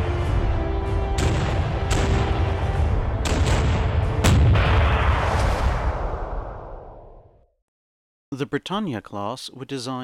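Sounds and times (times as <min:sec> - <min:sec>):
heavy gunfire: 0:03.2 - 0:05.5.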